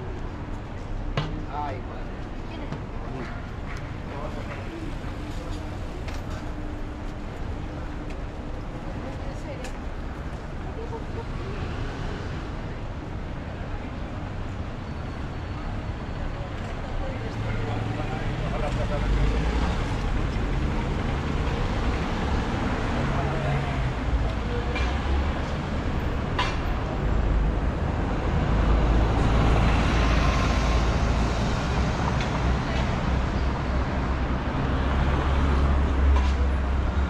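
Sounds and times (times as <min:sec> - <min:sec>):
pedestrians' voices: 0:00.0 - 0:37.0
traffic rumble: 0:00.0 - 0:37.0.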